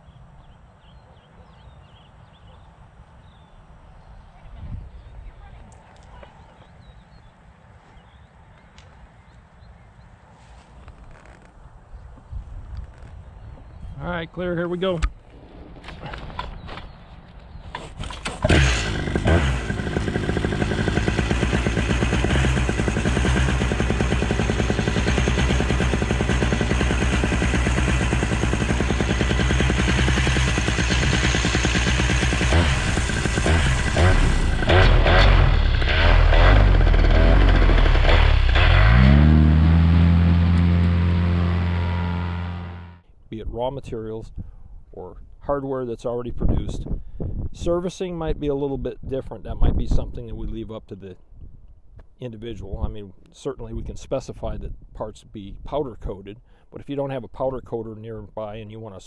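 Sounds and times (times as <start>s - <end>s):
engine starter clicks: 17.8s - 21.5s
paramotor engine and propeller: 17.8s - 43.0s.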